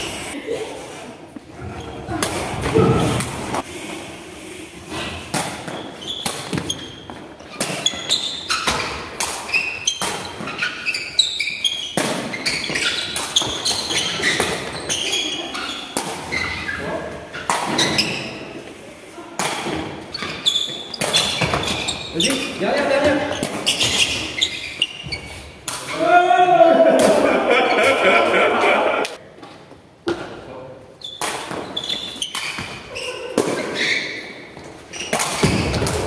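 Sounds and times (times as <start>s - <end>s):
ball kick thuds in hall: 35.1s - 36.0s.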